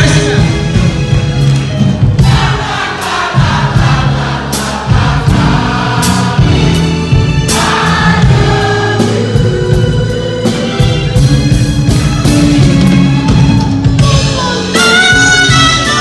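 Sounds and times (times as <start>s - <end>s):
bass line: 0.0s - 16.0s
drum beat: 0.0s - 16.0s
voices singing in harmony: 2.2s - 11.1s.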